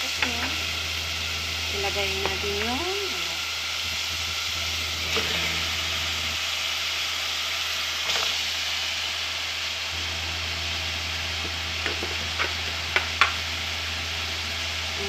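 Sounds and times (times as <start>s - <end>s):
food sizzling in hot oil: 0.0s - 15.0s.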